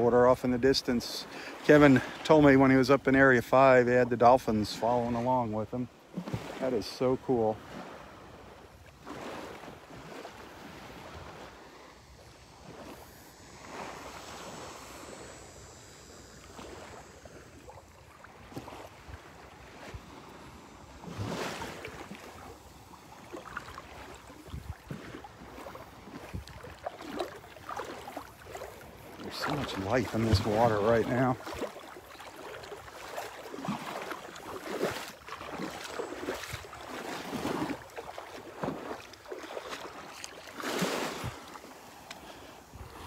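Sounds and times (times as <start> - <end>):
seawater sloshing and lapping: 0.0 - 15.3, 16.3 - 43.0
wind on microphone: 23.6 - 31.7, 42.6 - 43.0.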